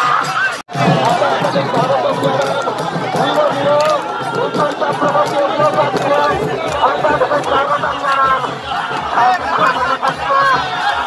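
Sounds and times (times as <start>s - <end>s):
crowd chatter: 0.0s - 11.0s
low pulsing beat: 0.7s - 10.8s.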